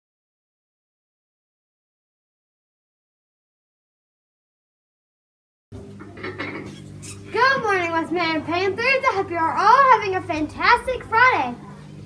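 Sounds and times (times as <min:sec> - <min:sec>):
low electrical hum: 0:05.7 - 0:12.0
girl speaking: 0:07.3 - 0:11.9.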